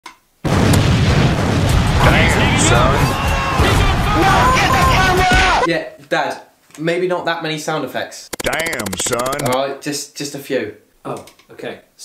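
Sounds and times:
explosion with deep rumble: 0:00.5 - 0:03.0.

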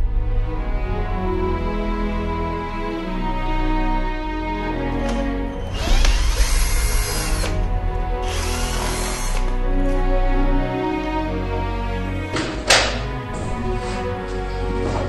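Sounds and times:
cordless drill running: 0:05.7 - 0:07.6, 0:08.2 - 0:09.5.

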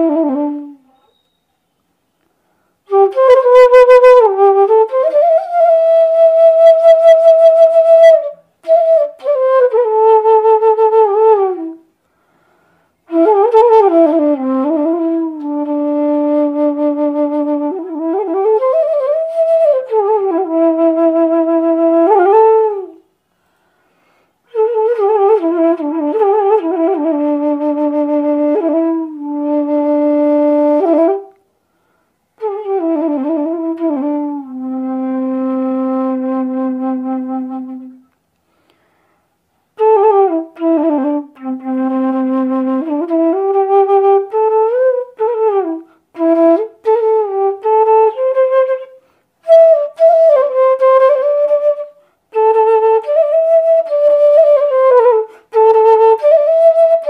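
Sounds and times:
bamboo flute melody: 0:00.0 - 0:01.8, 0:02.9 - 0:11.9, 0:13.0 - 0:23.1, 0:24.4 - 0:31.4, 0:32.4 - 0:38.2, 0:39.8 - 0:57.0.

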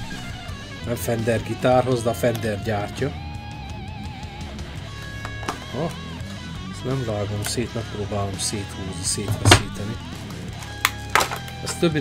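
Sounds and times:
background guitar music: 0:00.0 - 0:12.0
plastic blister pack clicks: 0:10.2 - 0:11.8.

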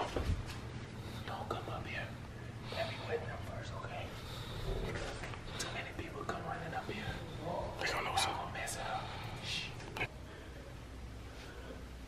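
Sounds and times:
faint whispering voices: 0:01.1 - 0:10.1.

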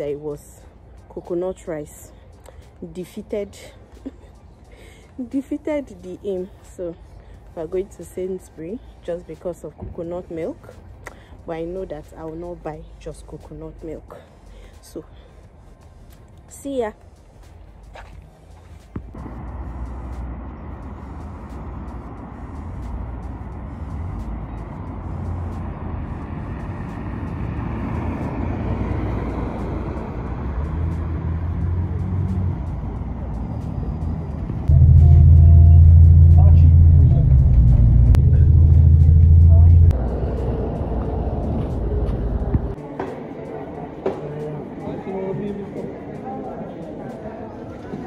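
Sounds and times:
bus engine rumble: 0:00.0 - 0:48.0.

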